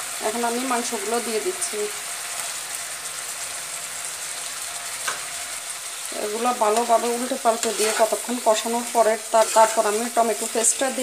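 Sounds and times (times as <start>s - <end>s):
masala sizzling in oil: 0.0s - 11.0s.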